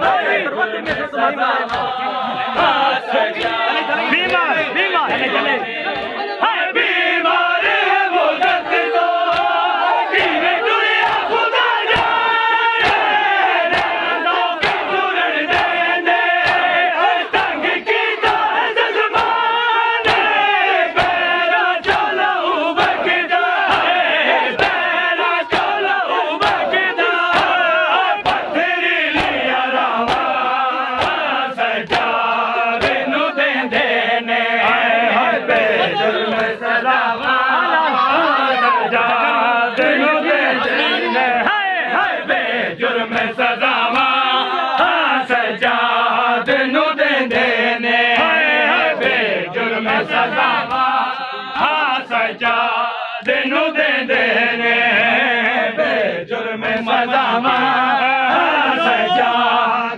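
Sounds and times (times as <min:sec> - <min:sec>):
palms slapping chests: 0:00.0 - 0:06.2, 0:07.6 - 0:38.3
men chanting in unison: 0:00.0 - 0:59.9.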